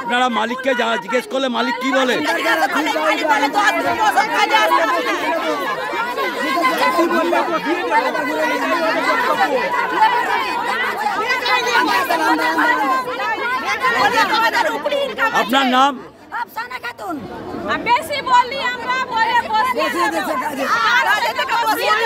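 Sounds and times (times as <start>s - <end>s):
women talking over one another: 0.0s - 22.0s.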